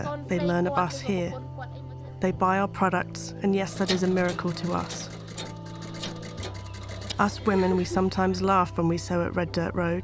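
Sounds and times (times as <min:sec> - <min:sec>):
treadle sewing machine ticking: 0:03.6 - 0:08.2.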